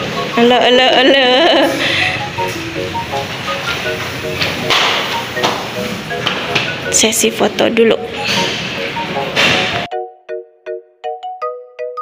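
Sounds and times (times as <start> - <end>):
simple melody background music: 0.0 - 12.0.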